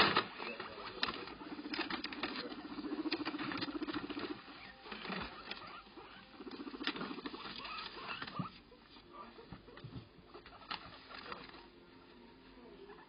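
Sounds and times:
guinea pigs pulsing call: 0.0 - 13.0.

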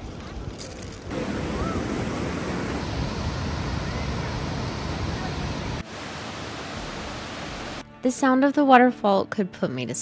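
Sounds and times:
waterfall rushing over boulders: 4.5 - 7.8.

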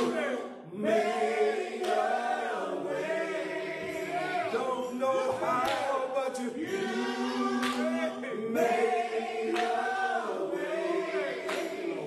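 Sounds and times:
men singing gospel together: 0.0 - 12.0.

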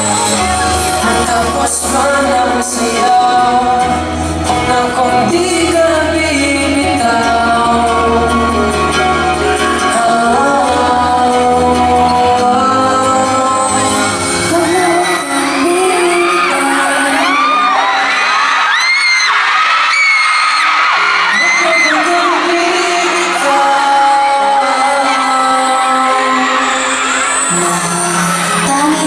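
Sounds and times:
crowd noise: 0.0 - 29.0
live pop ballad: 0.0 - 29.0.

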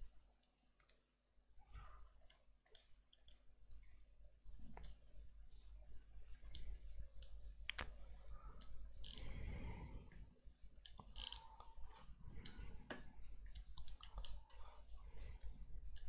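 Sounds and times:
computer mouse clicks: 2.2 - 3.5, 4.6 - 5.0, 10.8 - 16.0.

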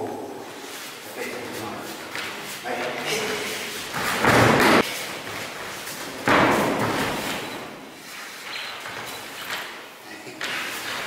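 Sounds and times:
heavy thuds on gym mats: 3.9 - 4.8, 6.0 - 7.5.

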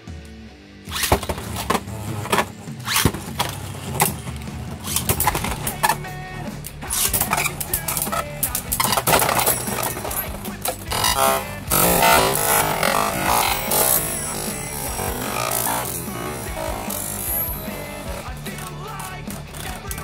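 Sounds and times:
background music: 0.0 - 20.0
spinning tops clashing: 0.9 - 19.8.

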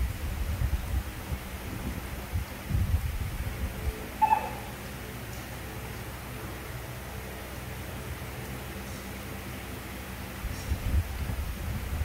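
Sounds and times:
baby monkey squeak: 4.2 - 4.7.

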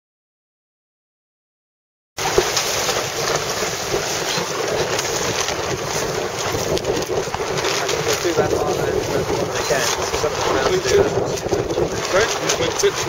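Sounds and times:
water splashing around boat: 2.2 - 13.0
wind buffeting microphone: 2.2 - 13.0.

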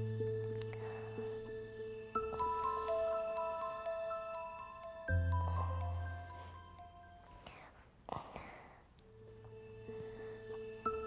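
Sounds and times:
gentle music: 0.0 - 11.0
person whispering breaths: 0.6 - 3.5, 5.3 - 11.0.

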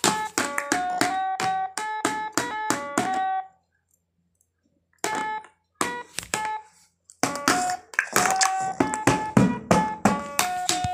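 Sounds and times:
toy drum strikes: 0.0 - 3.4, 7.2 - 10.9.

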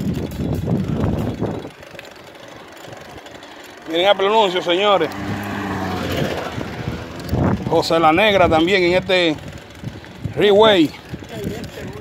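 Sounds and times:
small motorcycle engine passing: 0.0 - 12.0.

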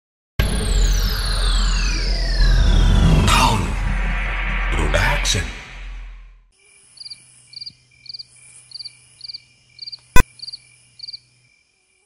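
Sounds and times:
crickets chirping: 6.6 - 12.0.

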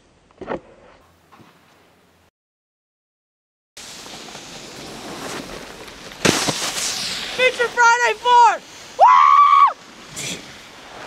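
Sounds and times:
boy yelling high-pitched: 7.4 - 9.8.

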